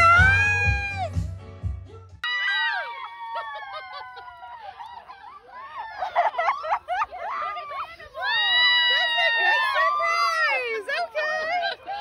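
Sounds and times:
women squealing and shrieking: 2.2s - 12.0s.

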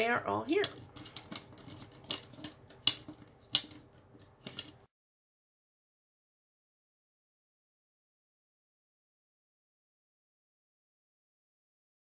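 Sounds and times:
plastic bags crinkling and clicking: 0.5s - 4.8s.

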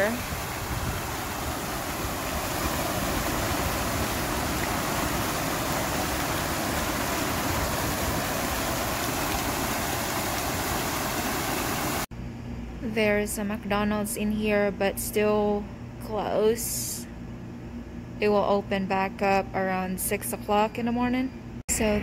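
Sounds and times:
fountain water splashing into pool: 0.0s - 12.1s.

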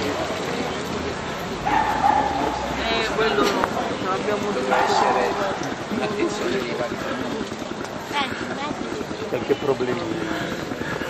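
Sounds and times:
hubbub of voices: 0.0s - 11.0s.

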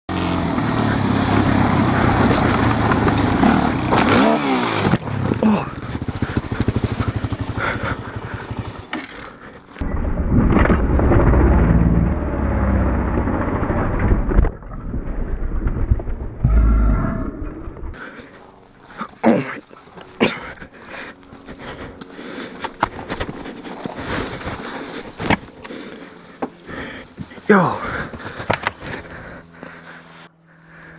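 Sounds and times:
quad bike engine revving: 0.1s - 14.3s.

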